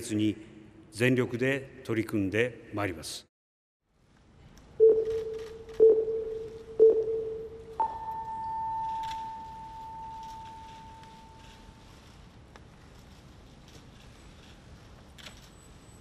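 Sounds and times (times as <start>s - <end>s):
short time signal pips: 4.8s - 11.7s
long high tone ringing: 4.8s - 12.0s.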